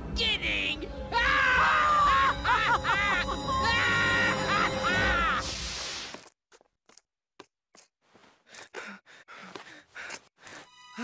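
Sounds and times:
background music: 0.0s - 5.6s, 10.7s - 11.0s
cartoon villain laughing loudly: 1.5s - 5.5s.

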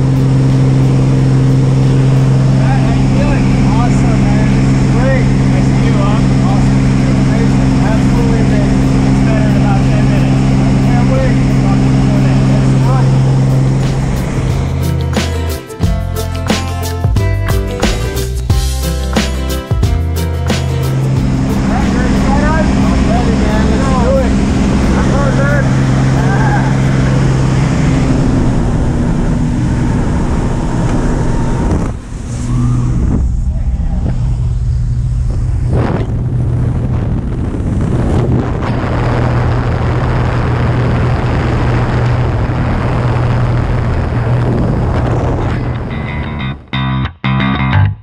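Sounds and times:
rushing wind noise: 0.0s - 16.0s, 20.3s - 46.7s
propeller plane engine drone: 0.0s - 17.0s, 17.6s - 46.7s
raised voices: 21.6s - 29.0s.

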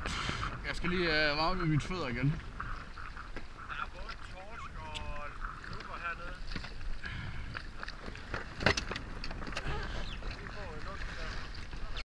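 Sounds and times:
water lapping against boat: 0.0s - 12.0s.

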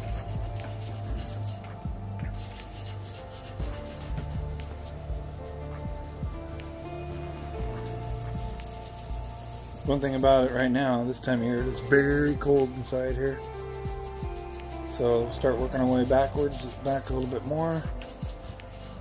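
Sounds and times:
microphone rubbing and rustling: 0.0s - 10.6s
calm background music: 0.0s - 19.0s.

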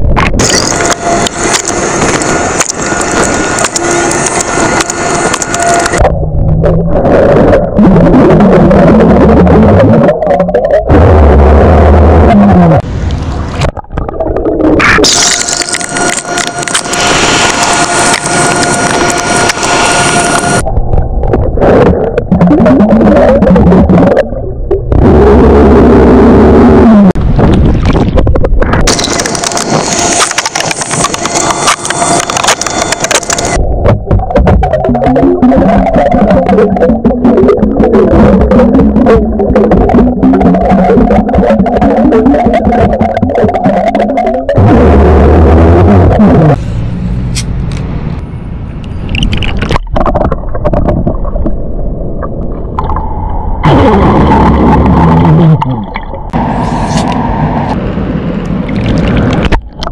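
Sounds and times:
gulping underwater: 4.9s - 12.8s, 21.2s - 46.6s, 49.6s - 57.2s
loud low burps: 53.6s - 56.1s.

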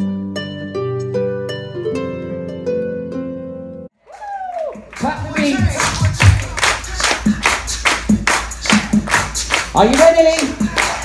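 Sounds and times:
music: 0.0s - 11.0s
people clapping in rhythm: 4.1s - 11.0s.

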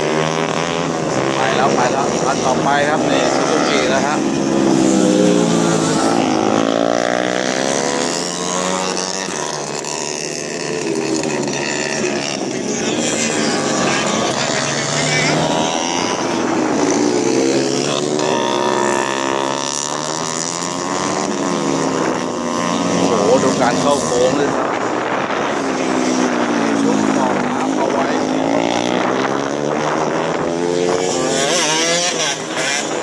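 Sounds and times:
racing motorcycles revving: 0.0s - 33.0s.

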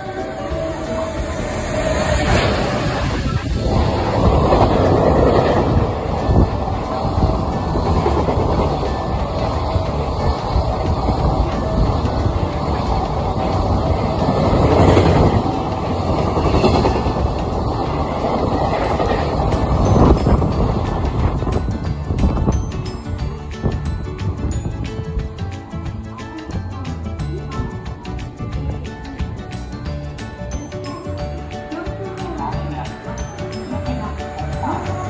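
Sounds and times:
freight train passing: 0.0s - 35.0s.

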